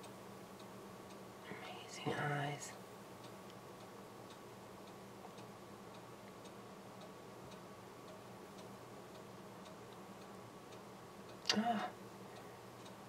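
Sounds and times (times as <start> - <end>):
faint regular ticking: 0.0 - 13.0
low steady hum: 0.0 - 13.0.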